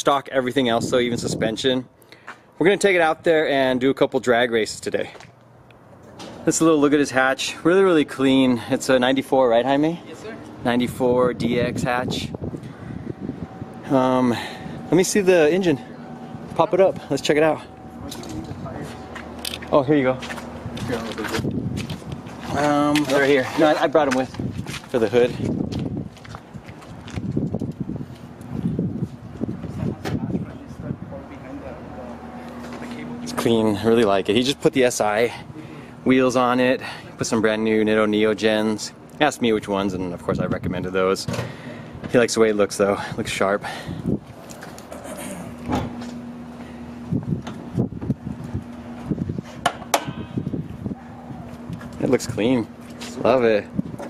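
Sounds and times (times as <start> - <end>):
steady low hum: 0.0 - 54.0
footsteps on concrete: 18.0 - 29.8.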